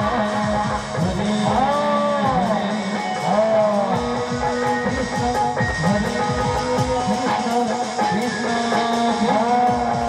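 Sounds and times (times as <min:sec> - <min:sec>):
fast steady drum rhythm: 0:00.0 - 0:10.0.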